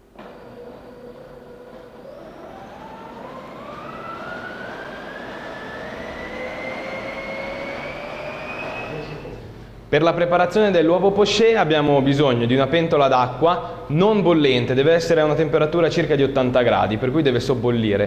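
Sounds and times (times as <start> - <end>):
blender motor whining: 0.1 - 9.4.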